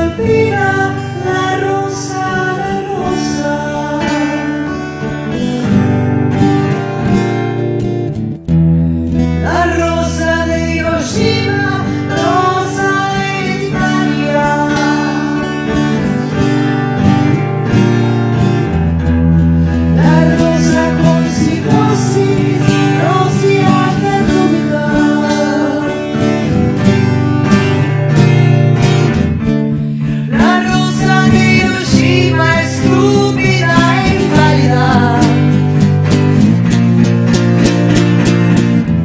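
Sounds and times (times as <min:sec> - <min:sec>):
woman singing: 0:00.0 - 0:05.4, 0:09.3 - 0:16.4, 0:19.9 - 0:26.6, 0:30.0 - 0:35.9
strummed acoustic guitar: 0:00.0 - 0:39.0.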